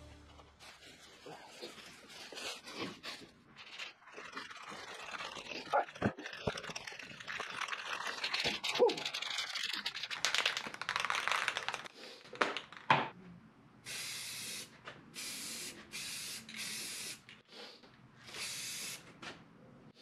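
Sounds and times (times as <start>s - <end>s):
spray can ball rattling: 4.3s - 11.9s
spray can hissing bursts: 13.9s - 17.2s, 18.3s - 19.1s.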